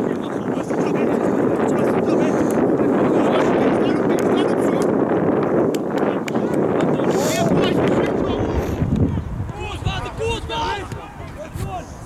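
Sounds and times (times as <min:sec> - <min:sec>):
wind buffeting microphone: 0:00.0 - 0:12.0
players calling: 0:09.4 - 0:12.0.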